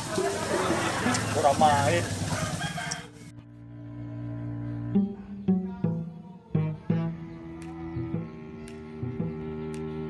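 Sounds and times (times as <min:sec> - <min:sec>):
outdoor background noise: 0:00.0 - 0:10.0
rooster crowing: 0:00.7 - 0:03.4
bowed string music: 0:03.3 - 0:10.0.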